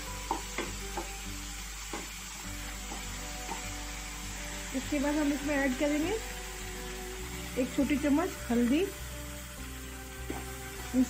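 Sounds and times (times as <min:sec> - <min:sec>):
food sizzling in hot oil: 0:00.0 - 0:11.0
spatula scraping and tapping pan: 0:02.8 - 0:03.9, 0:10.2 - 0:10.6.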